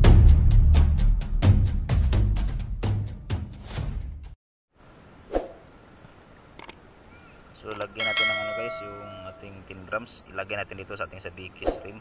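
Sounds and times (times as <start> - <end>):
sharp mouse clicks: 6.6 - 6.8
bell ding: 8.0 - 9.5.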